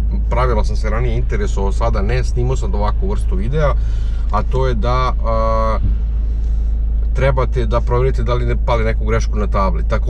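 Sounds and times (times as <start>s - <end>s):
low rumble in car cabin: 0.0s - 10.0s.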